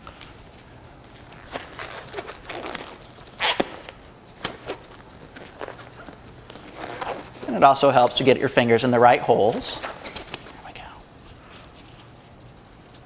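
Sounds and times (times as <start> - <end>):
rubber glove snaps and rustles: 0.0 - 7.6, 9.5 - 10.5.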